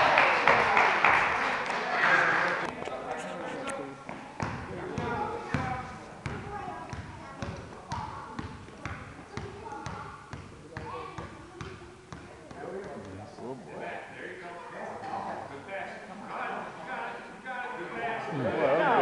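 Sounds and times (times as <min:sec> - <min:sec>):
children chattering: 0:01.5 - 0:12.9, 0:17.8 - 0:19.0.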